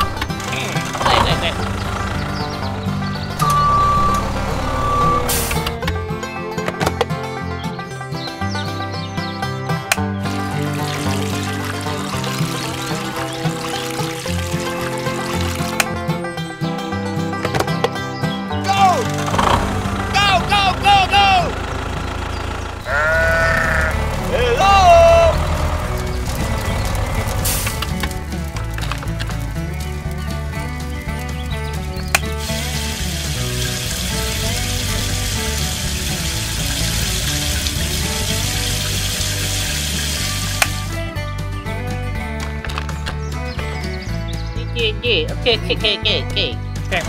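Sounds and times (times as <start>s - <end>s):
water pump spraying hiss: 5.3s - 5.6s, 10.6s - 15.8s, 25.4s - 28.2s, 32.3s - 40.9s.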